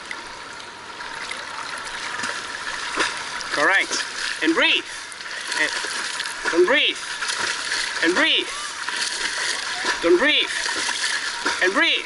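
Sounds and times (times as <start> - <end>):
light water splashing: 0.0 - 12.0
pool water lapping: 0.0 - 12.0.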